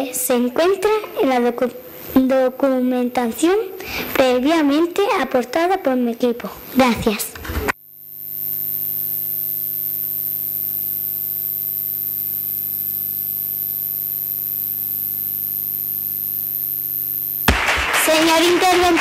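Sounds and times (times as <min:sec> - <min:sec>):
electrical mains hum: 0:00.0 - 0:19.0
thin high whine: 0:00.0 - 0:19.0.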